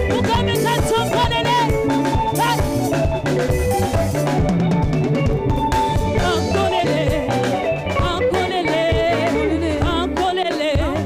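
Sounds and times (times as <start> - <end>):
band accompaniment with bass: 0.0 - 11.0
woman singing gospel song: 0.2 - 1.7, 6.2 - 11.0.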